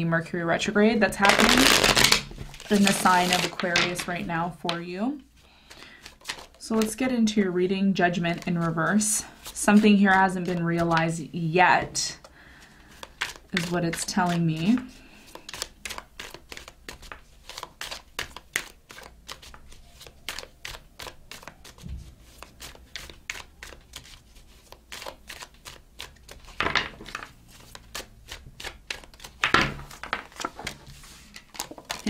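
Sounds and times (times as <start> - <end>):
cards being shuffled: 1.2 - 4.3, 5.6 - 7.0, 8.3 - 11.1, 12.6 - 32.0.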